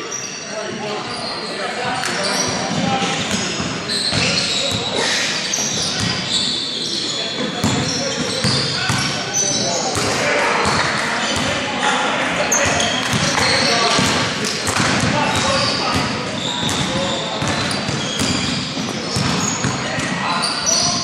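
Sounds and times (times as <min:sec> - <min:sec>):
sneaker squeaks: 0:00.0 - 0:11.6, 0:12.3 - 0:21.0
players calling out: 0:00.2 - 0:21.0
basketball bouncing on court: 0:02.5 - 0:04.9, 0:05.8 - 0:06.2, 0:07.6 - 0:09.2, 0:09.9 - 0:11.6, 0:12.6 - 0:20.2.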